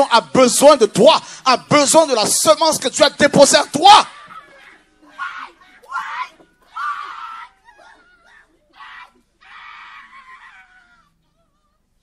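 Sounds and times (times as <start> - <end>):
people crying out in high shouts: 3.9 - 11.9.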